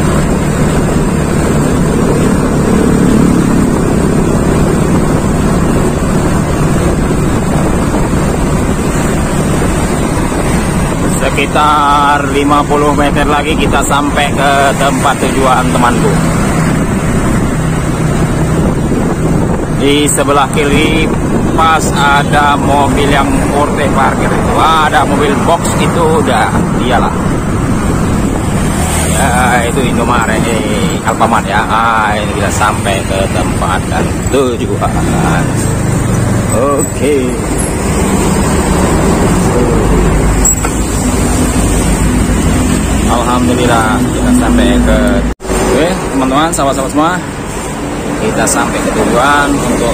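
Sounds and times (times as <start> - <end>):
street traffic rumble: 0.0 - 49.9
vehicle engine hum: 0.0 - 49.9
wind rushing on microphone: 0.0 - 49.9
voices: 10.9 - 16.4, 19.8 - 27.4, 29.0 - 37.7, 39.0 - 41.6, 43.0 - 49.9.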